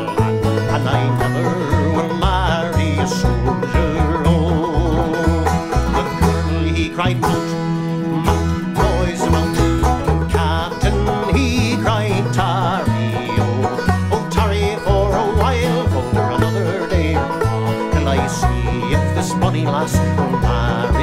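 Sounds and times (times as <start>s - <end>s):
wavering melody with vibrato: 0.0s - 20.9s
banjos picking a tune: 0.0s - 21.0s
deep bass notes: 0.0s - 21.0s.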